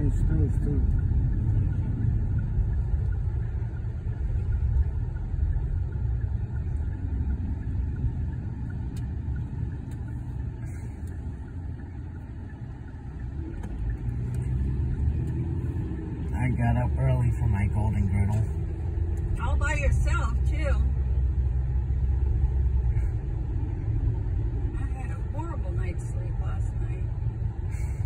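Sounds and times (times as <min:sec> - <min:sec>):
car engine and tyre rumble: 0:00.0 - 0:28.0.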